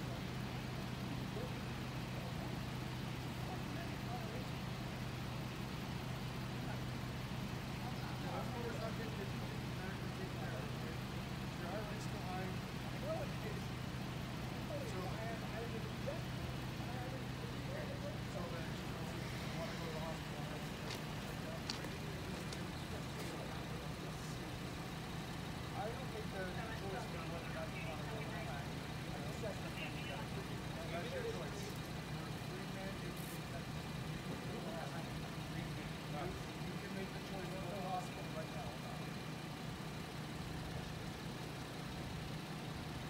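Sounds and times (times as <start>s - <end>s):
faint conversation: 0.0s - 43.0s
vehicle engine idling: 0.0s - 43.0s.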